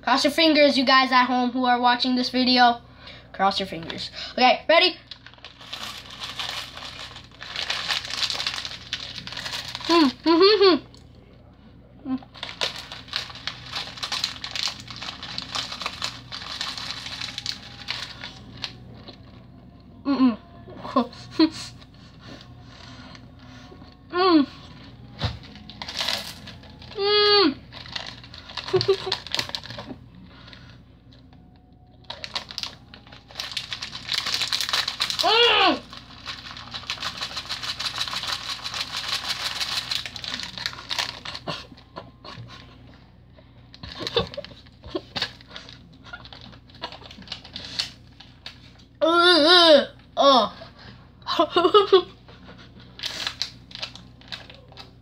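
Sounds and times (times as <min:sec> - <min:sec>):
plastic candy bag crinkling: 0:03.5 - 0:11.0, 0:12.3 - 0:19.5, 0:24.6 - 0:43.0, 0:43.6 - 0:49.0, 0:51.7 - 0:55.0
person humming: 0:20.0 - 0:21.8, 0:23.8 - 0:24.8, 0:26.7 - 0:27.7.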